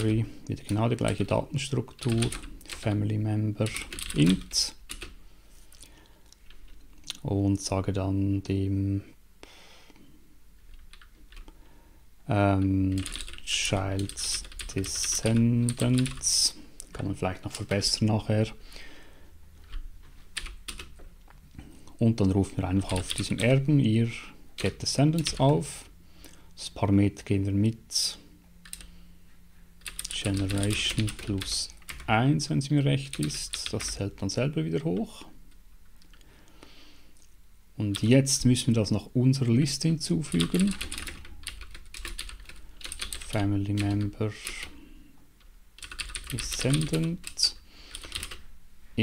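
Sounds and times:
computer keyboard typing: 0:01.9 - 0:03.0, 0:03.6 - 0:05.2, 0:10.7 - 0:11.5, 0:12.9 - 0:16.4, 0:20.4 - 0:21.0, 0:22.8 - 0:23.5, 0:24.6 - 0:25.5, 0:28.6 - 0:28.9, 0:29.8 - 0:32.1, 0:40.3 - 0:44.7, 0:45.4 - 0:48.4
computer keyboard keystrokes: 0:03.6 - 0:05.2, 0:12.9 - 0:13.4, 0:28.6 - 0:28.9, 0:29.8 - 0:31.3, 0:40.3 - 0:43.2, 0:45.8 - 0:48.4.

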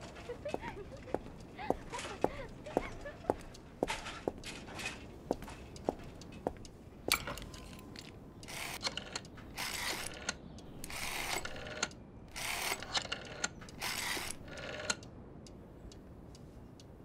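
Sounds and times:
faint clicks: 0:00.0 - 0:17.0
rotary telephone dial ratcheting: 0:08.4 - 0:15.0.

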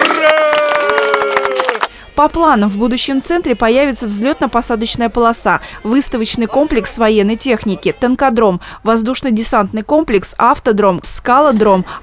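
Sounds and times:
people shouting: 0:00.0 - 0:01.9.

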